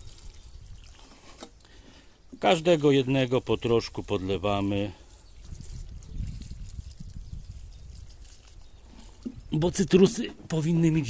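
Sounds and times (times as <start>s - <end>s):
water trickling onto soil: 0.0s - 11.0s.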